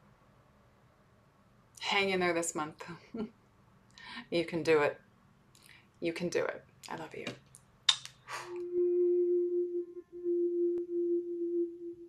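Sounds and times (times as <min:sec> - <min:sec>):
sustained pure tone: 0:08.5 - 0:12.0.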